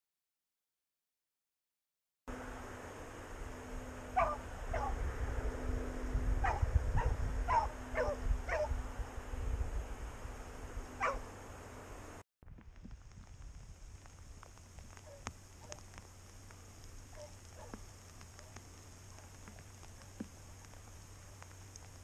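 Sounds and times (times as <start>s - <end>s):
low hum and rumble: 2.3s - 22.0s
dog yipping and whining: 4.2s - 5.0s, 6.4s - 8.7s, 11.0s - 11.2s.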